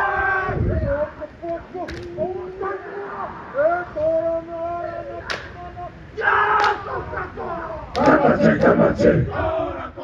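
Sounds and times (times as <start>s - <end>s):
group shout: 0.0s - 1.0s, 6.2s - 10.0s.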